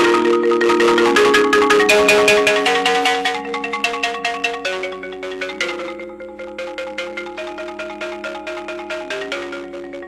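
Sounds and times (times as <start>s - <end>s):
marimba rolling chords: 0.0s - 10.0s.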